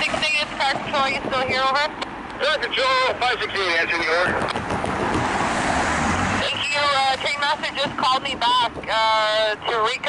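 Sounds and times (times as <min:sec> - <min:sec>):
radio voice: 0:02.4 - 0:04.5, 0:06.4 - 0:10.0.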